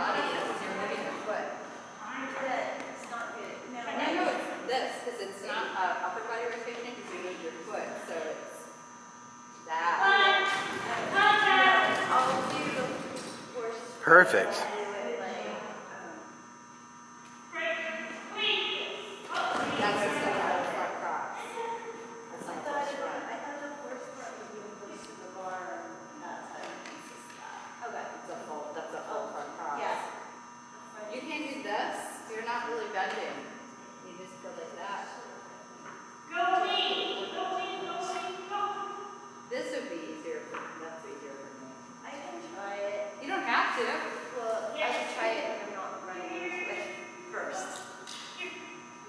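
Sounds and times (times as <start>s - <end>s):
faint steady hum: 0.0s - 49.0s
indistinct voices talking: 9.7s - 16.4s.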